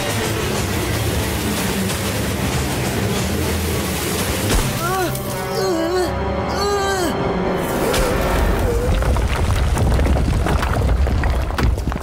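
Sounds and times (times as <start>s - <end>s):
background music: 0.0s - 9.7s
cartoon rolling rumble: 8.4s - 12.0s.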